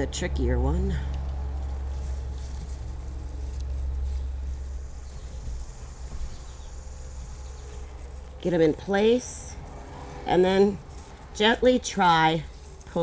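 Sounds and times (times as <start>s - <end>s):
low background rumble: 0.0s - 13.0s.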